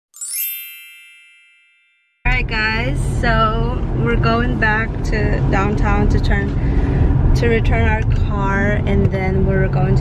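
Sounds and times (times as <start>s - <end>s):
bright bell-like chime: 0.1s - 2.3s.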